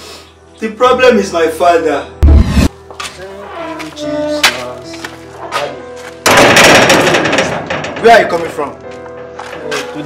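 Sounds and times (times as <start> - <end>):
soft background music: 0.0 - 10.0
steel gate bolt rattling: 6.3 - 8.6.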